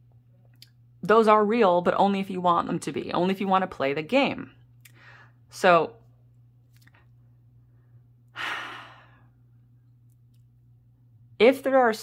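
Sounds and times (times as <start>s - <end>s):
woman sighing breath: 8.3s - 9.3s.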